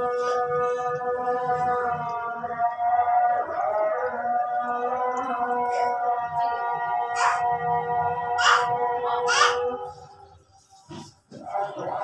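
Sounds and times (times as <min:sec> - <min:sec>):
man singing call to prayer over loudspeaker: 0:00.0 - 0:12.0.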